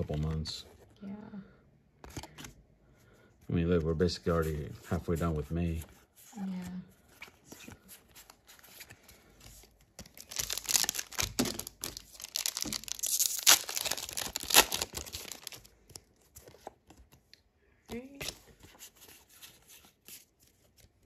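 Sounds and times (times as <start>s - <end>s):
foil wrapper tearing and crinkling: 10.0s - 15.6s.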